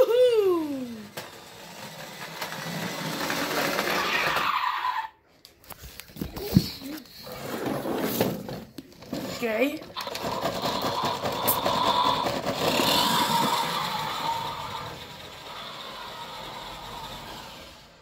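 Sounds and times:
toy car motor whirring: 0:00.0 - 0:05.0, 0:09.4 - 0:18.0.

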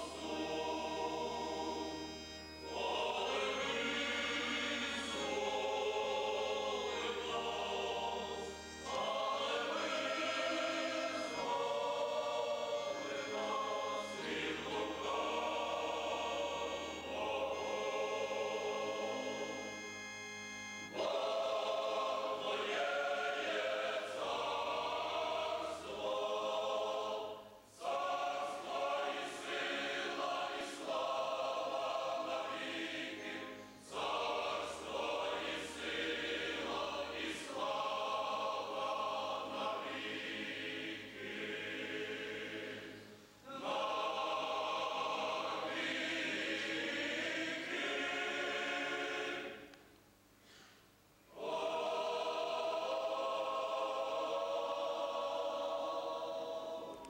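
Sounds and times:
mixed choir singing a hymn: 0:00.0 - 0:49.8, 0:51.3 - 0:57.0.

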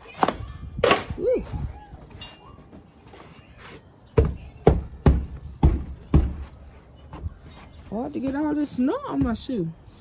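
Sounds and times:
heavy footsteps on wooden deck: 0:04.2 - 0:09.7.

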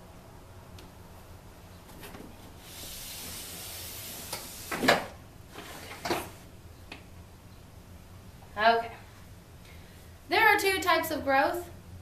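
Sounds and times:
whiteboard sliding and rustling: 0:01.9 - 0:06.5.

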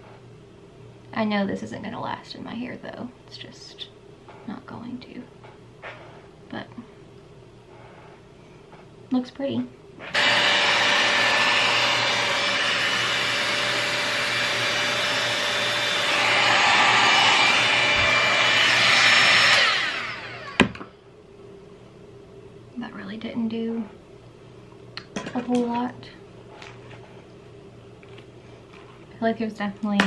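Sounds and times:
hot-air styler blowing: 0:10.0 - 0:20.9.

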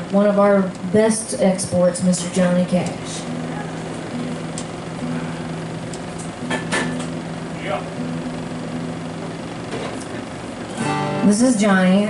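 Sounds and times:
guitar pick clicks: 0:02.8 - 0:03.0, 0:04.2 - 0:04.8, 0:05.8 - 0:07.2
acoustic guitar strings plucked: 0:02.8 - 0:11.5.

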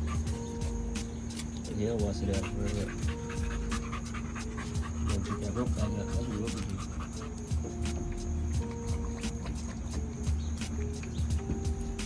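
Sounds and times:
dog panting quickly: 0:00.0 - 0:00.8, 0:01.8 - 0:10.1.

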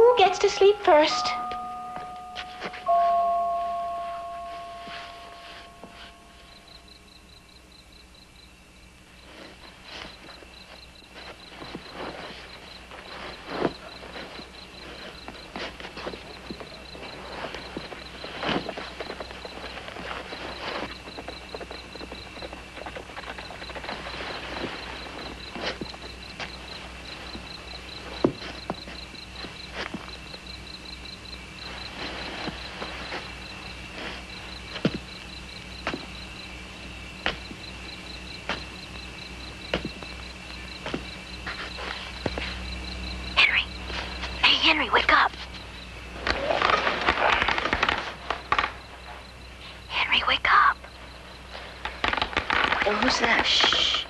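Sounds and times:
ringing tone: 0:00.0 - 0:07.6
crickets chirping: 0:00.0 - 0:54.0
clothes rustling in cloth bag: 0:02.4 - 0:06.6, 0:09.2 - 0:30.4, 0:31.5 - 0:35.2.

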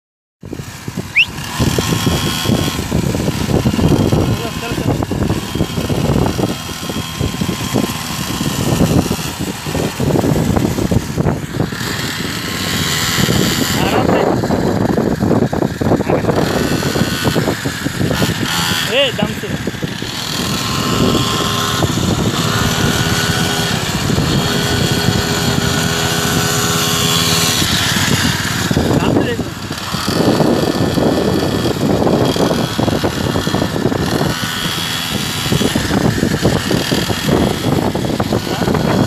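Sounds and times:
dirt bike engine running: 0:00.4 - 0:39.0.

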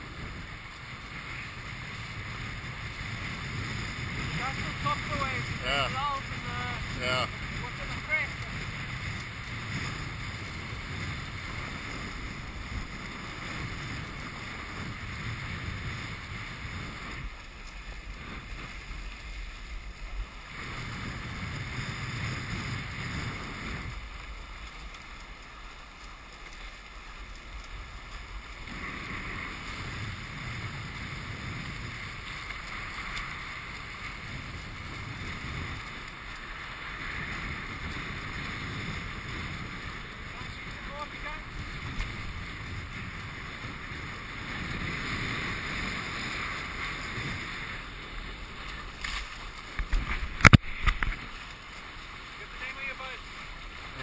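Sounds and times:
water noise of sailboat: 0:00.0 - 0:54.0
wind buffeting microphone: 0:00.0 - 0:54.0.

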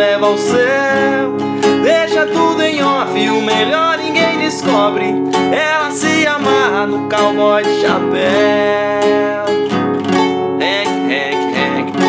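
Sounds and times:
man singing: 0:00.0 - 0:09.8, 0:10.5 - 0:12.0
acoustic guitar strumming: 0:00.0 - 0:12.0.

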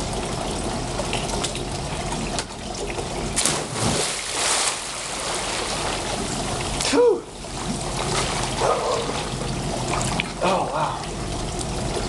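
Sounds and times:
trickle of running water: 0:00.0 - 0:12.0
water splashing: 0:01.0 - 0:12.0
body slapping into water: 0:03.4 - 0:06.2, 0:07.9 - 0:09.3.

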